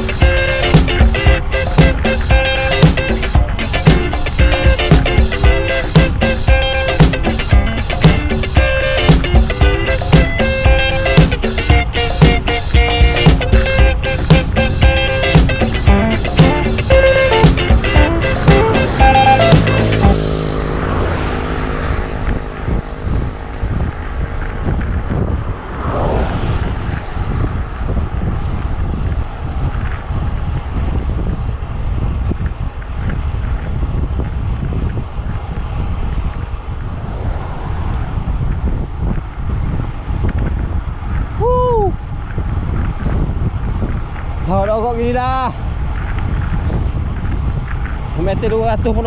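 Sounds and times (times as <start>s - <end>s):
background music: 0.0s - 22.7s
wind on microphone: 0.0s - 49.0s.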